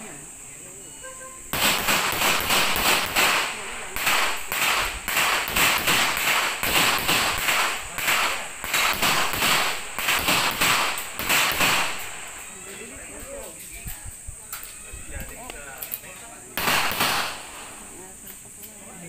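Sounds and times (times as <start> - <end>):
rapid handgun fire: 1.5 - 12.4, 16.6 - 17.9.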